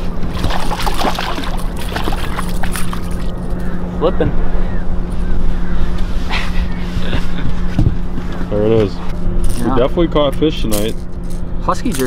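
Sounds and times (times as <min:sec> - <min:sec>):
wind and water rumble: 0:00.0 - 0:10.3
boat motor humming: 0:00.0 - 0:12.0.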